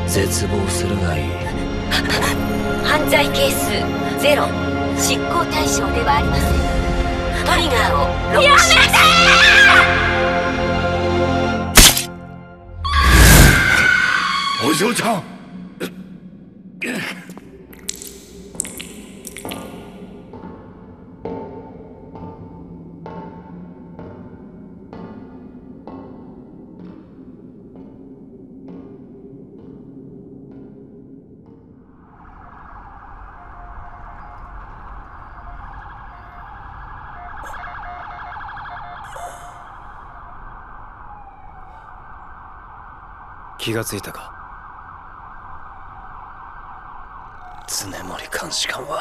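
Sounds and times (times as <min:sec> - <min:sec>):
low steady music: 0:00.0 - 0:12.8, 0:15.5 - 0:32.0
police sirens wailing: 0:07.4 - 0:11.6, 0:32.0 - 0:49.0
liquid dripping: 0:17.3 - 0:20.6.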